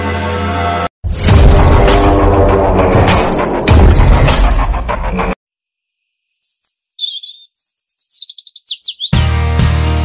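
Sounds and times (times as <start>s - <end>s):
music: 0.0s - 5.4s, 9.1s - 10.0s
birds chirping: 6.0s - 9.2s.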